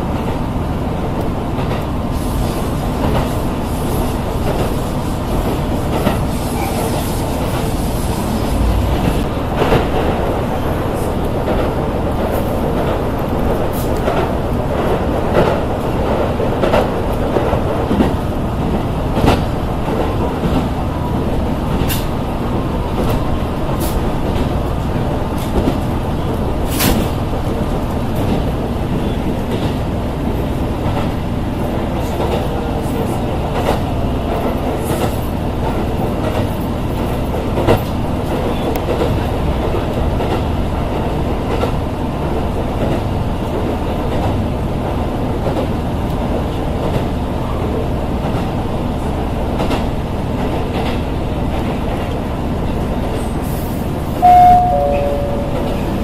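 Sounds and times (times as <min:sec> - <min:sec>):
train wheels rumbling on rails: 0:00.0 - 0:56.0
clicks and knocks from track: 0:21.7 - 0:22.2.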